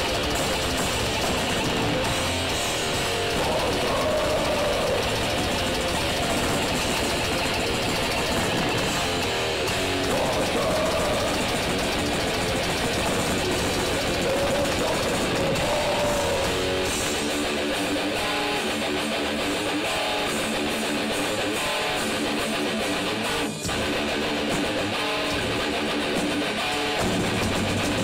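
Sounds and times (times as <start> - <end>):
bass guitar: 0.0 - 28.0
distorted electric guitars: 0.0 - 28.0
drums: 0.0 - 28.0.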